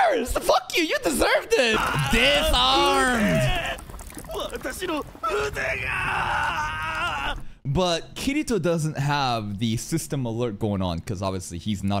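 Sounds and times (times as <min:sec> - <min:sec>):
man screaming in agony: 0:01.7 - 0:07.4.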